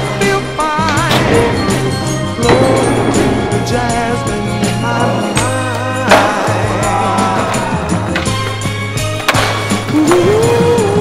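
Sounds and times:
song playing: 0.0s - 11.0s
skateboard clacks on concrete: 7.3s - 10.2s.

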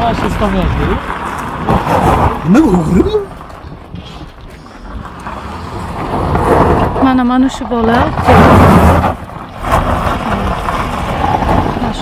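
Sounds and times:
tyres crunching on gravel: 0.0s - 12.0s.

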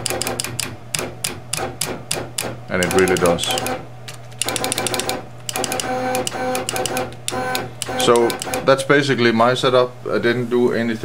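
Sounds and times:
machine motors whining: 2.7s - 8.9s.

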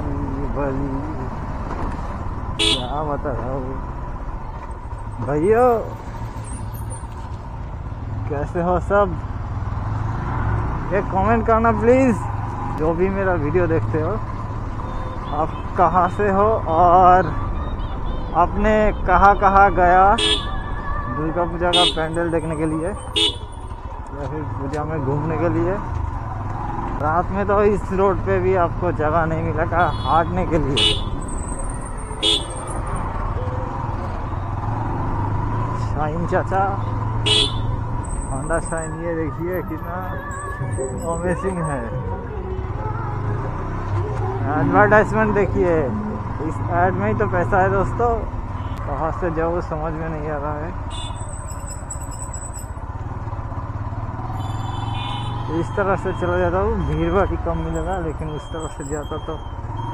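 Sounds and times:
motorcycle engine rumbling: 0.0s - 59.9s
road noise: 0.0s - 59.9s.

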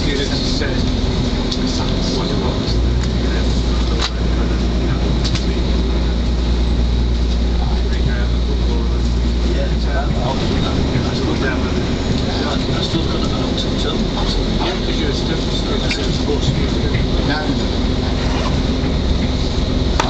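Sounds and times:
train engine drone: 0.0s - 20.0s
wheel and track rumble: 0.0s - 20.0s.

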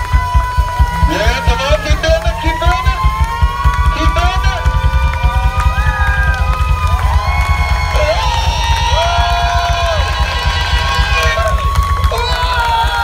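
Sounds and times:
drums and bass: 0.0s - 13.0s
singer holding sliding notes: 0.4s - 12.6s.

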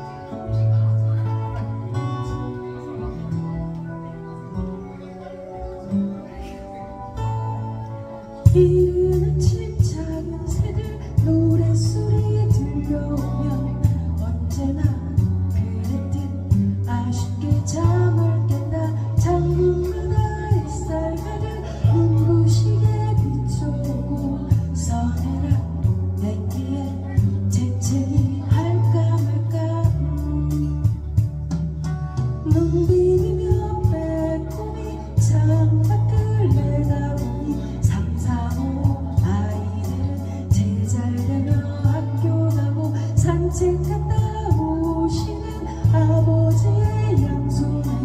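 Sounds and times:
woman singing: 8.4s - 31.3s, 32.4s - 48.0s.

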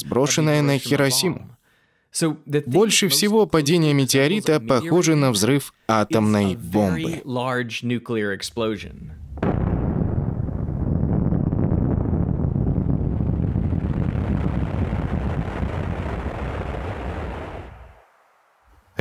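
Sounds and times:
low rumble: 9.0s - 18.0s
explosion blast: 9.2s - 18.0s.

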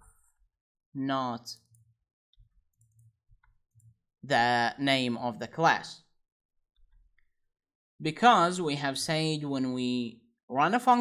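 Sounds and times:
keyboard typing: 1.6s - 3.9s
computer mouse clicks: 1.6s - 4.0s.

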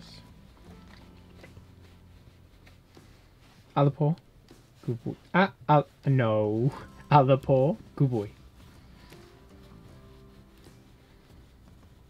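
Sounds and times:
towel rubbing dog's paw: 0.0s - 12.0s.

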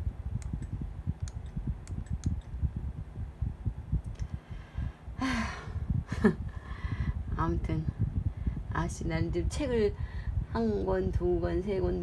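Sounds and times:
fan air buffeting microphone: 0.0s - 12.0s.

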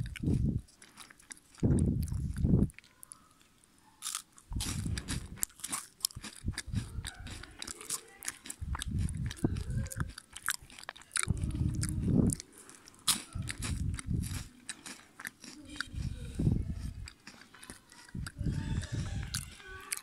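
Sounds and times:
chewing thuds: 0.0s - 2.9s, 4.0s - 20.0s
wafers crunching: 0.0s - 20.0s.

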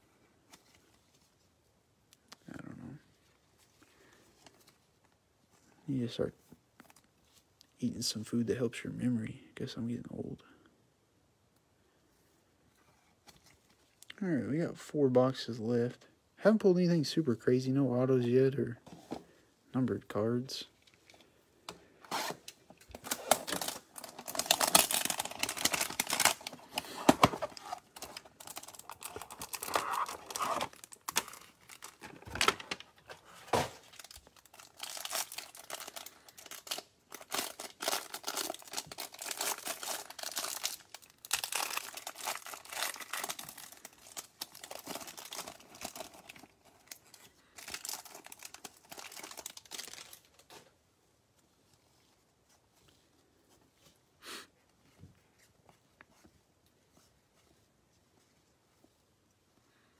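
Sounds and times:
packaging crinkling and tearing: 22.1s - 50.7s.

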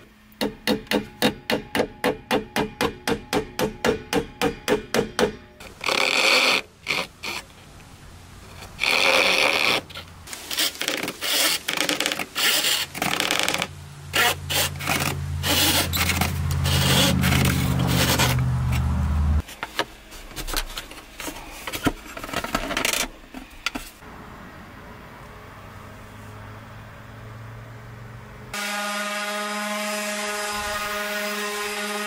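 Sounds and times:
hand saw cutting wood: 5.6s - 7.5s, 8.6s - 18.9s.

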